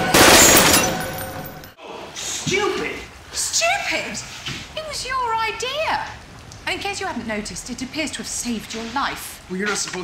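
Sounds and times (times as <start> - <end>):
loud blast: 0.0 - 1.6.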